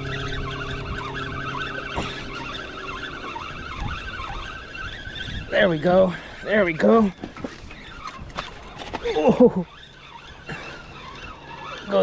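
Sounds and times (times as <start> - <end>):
fishing reel being cranked: 0.0 - 12.0.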